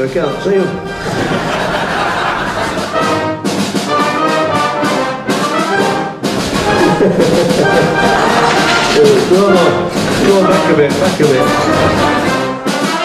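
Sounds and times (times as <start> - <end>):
brass band playing: 0.0 - 13.0.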